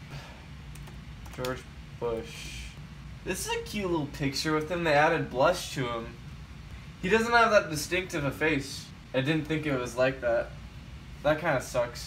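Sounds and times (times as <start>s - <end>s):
laptop keyboard typing: 0.7s - 1.7s
person speaking: 1.2s - 6.2s.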